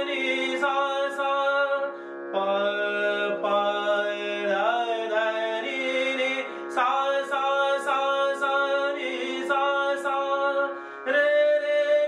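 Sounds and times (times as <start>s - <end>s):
harmonium drone: 0.0s - 12.0s
man singing long held notes: 0.0s - 12.0s.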